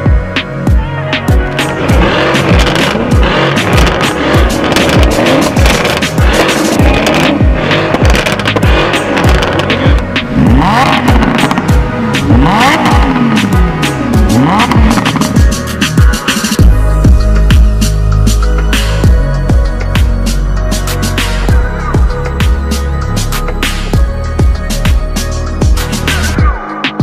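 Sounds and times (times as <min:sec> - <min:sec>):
hip-hop music with steady beat: 0:00.0 - 0:27.0
sports car engines revving: 0:01.2 - 0:16.7.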